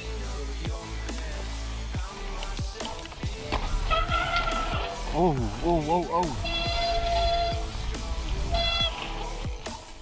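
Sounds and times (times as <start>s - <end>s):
bike disc brakes squealing: 6.2s - 10.0s.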